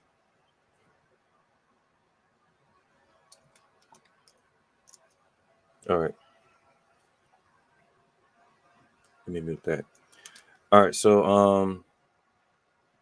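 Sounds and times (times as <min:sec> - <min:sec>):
man speaking: 0:05.8 - 0:06.1, 0:09.3 - 0:09.8, 0:10.7 - 0:11.8
faint short clicks: 0:09.8 - 0:10.6.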